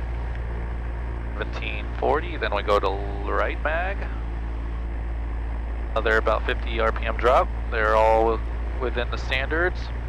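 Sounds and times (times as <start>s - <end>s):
piston engine and propeller running: 0.0s - 10.0s.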